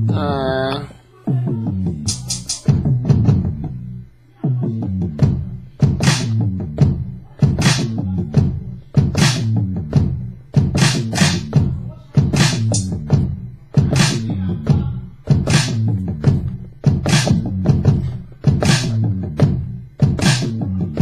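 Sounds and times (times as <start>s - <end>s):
deep bassline: 0.0s - 21.0s
kick drums: 1.3s - 3.9s, 4.5s - 21.0s
sharp snare hit: 6.0s - 6.3s, 17.1s - 17.4s.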